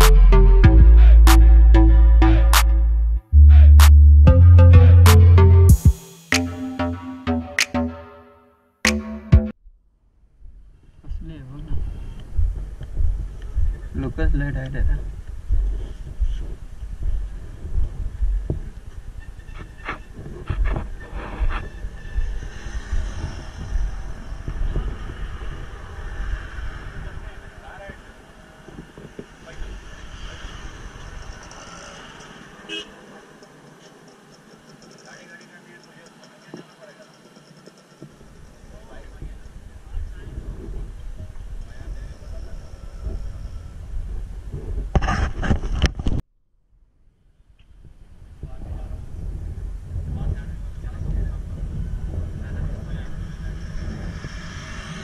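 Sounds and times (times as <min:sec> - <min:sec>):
wind buffeting microphone: 0:10.4 - 0:31.6, 0:38.1 - 0:46.2, 0:47.7 - 0:55.0
microphone handling knocks: 0:12.3 - 0:23.1
people talking: 0:13.9 - 0:15.0, 0:27.0 - 0:28.1, 0:29.4 - 0:30.4, 0:34.8 - 0:37.9, 0:38.5 - 0:42.8, 0:50.1 - 0:54.0.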